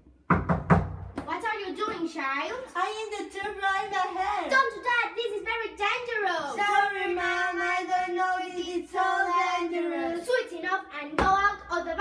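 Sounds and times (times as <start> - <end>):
sharp knocks: 0.3 - 2.0.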